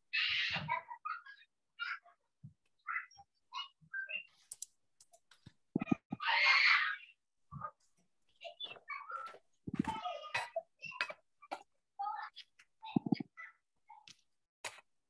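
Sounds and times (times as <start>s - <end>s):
small clicks: 4.5s - 6.1s
chopped-up voices over video call: 5.8s - 6.3s, 8.4s - 14.2s.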